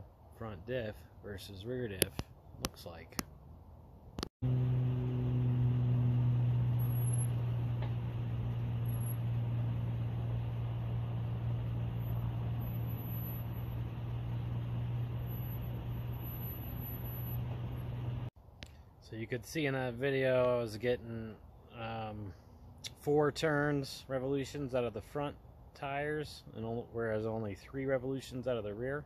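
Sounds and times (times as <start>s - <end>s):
truck engine running: 4.4s - 18.3s.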